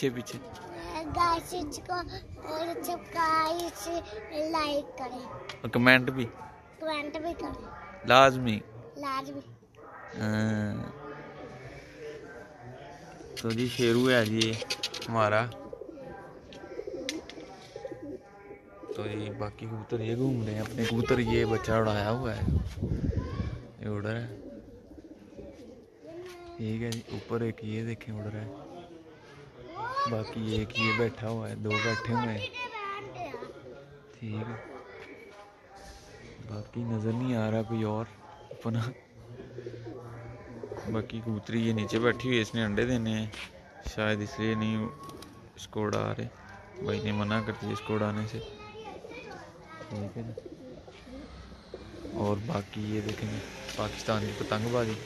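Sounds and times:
pigeons cooing: 0:13.0 - 0:19.9, 0:22.8 - 0:27.2, 0:37.7 - 0:42.3, 0:44.8 - 0:45.6, 0:48.4 - 0:52.7.

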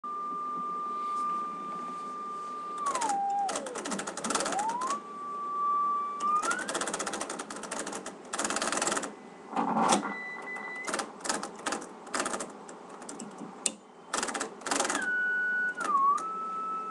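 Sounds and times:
high steady tone: 0:00.0 - 0:07.0
sliding heterodyne whistle: 0:00.2 - 0:03.8, 0:04.4 - 0:06.8, 0:14.9 - 0:16.9
rapid clicking noise: 0:02.8 - 0:05.0, 0:06.2 - 0:09.1, 0:10.8 - 0:15.1.

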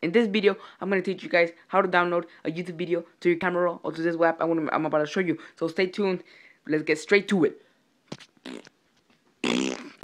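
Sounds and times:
faint mouth sounds: 0:08.1 - 0:08.8, 0:09.4 - 0:10.0
person blowing a raspberry: 0:08.1 - 0:08.8, 0:09.4 - 0:10.0.

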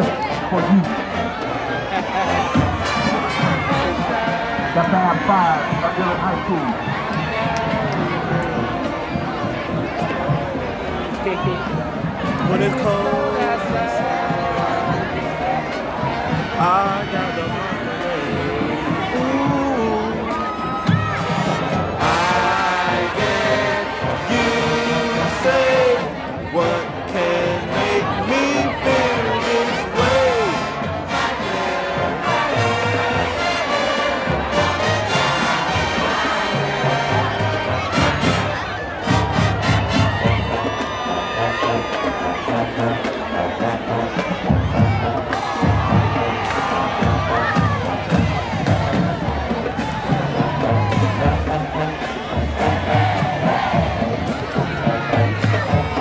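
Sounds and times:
crowd cheering and shouting: 0:00.0 - 0:56.0
drums: 0:00.0 - 0:56.0
marching band playing: 0:00.0 - 0:56.0.

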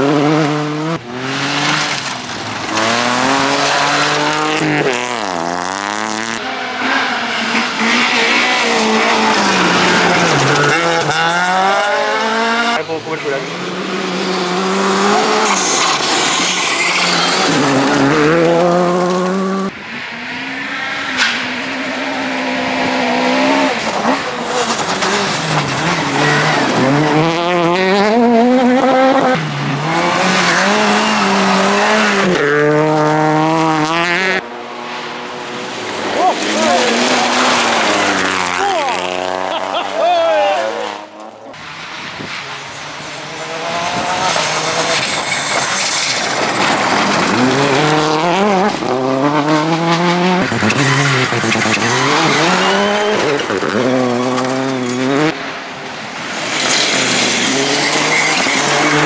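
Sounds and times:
rally car engines revving: 0:00.0 - 0:59.0.

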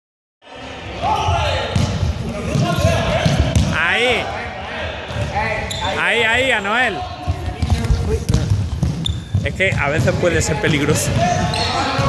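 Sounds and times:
players calling out: 0:00.7 - 0:12.0.

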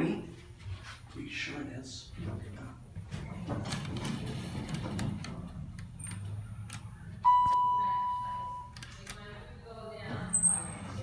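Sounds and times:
elevator chime ding: 0:07.2 - 0:08.7.

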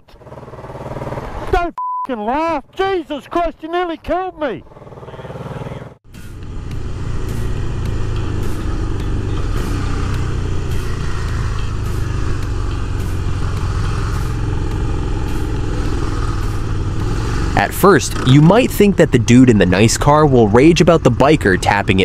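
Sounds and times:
motorcycle engine running: 0:00.0 - 0:01.6, 0:04.3 - 0:22.0.

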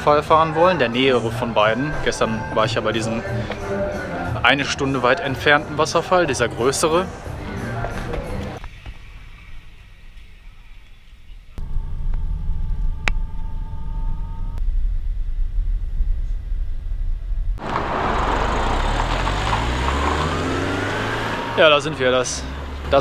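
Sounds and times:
minibus accelerating: 0:17.6 - 0:23.0
minibus engine rumble: 0:17.6 - 0:23.0.

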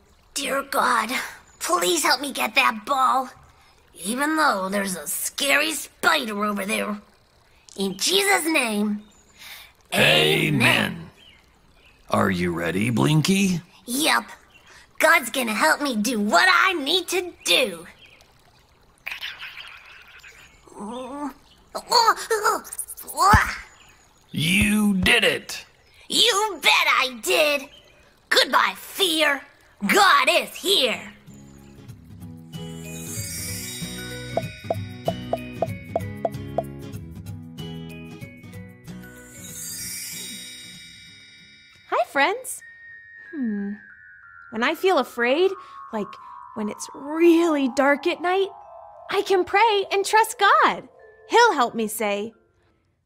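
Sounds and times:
bright chime ringing: 0:42.6 - 0:52.4.

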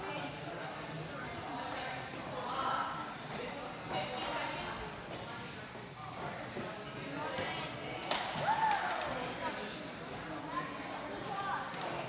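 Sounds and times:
voices echoing in a gymnasium: 0:00.0 - 0:12.0.

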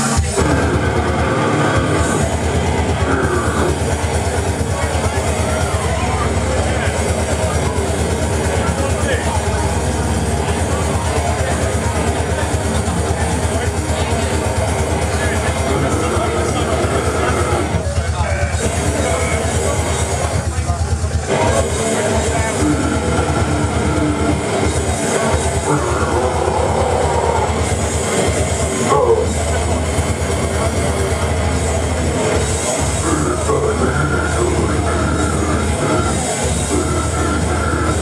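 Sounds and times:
distorted electric guitar: 0:00.0 - 0:38.0.

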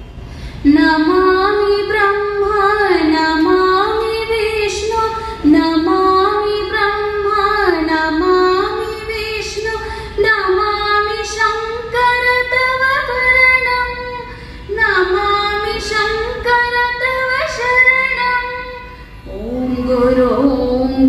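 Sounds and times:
woman singing a prayer song: 0:00.7 - 0:21.0.

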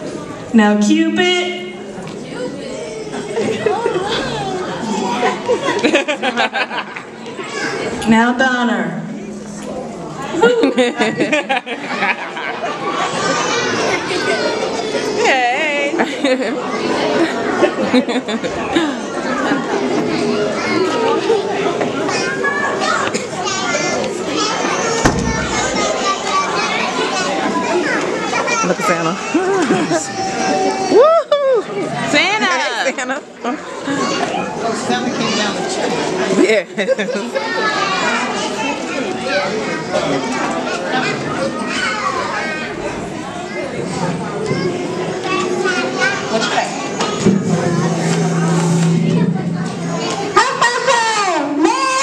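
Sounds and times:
voices chattering: 0:00.0 - 0:08.1, 0:31.6 - 0:52.0
children chattering: 0:00.0 - 0:08.2, 0:08.8 - 0:52.0.

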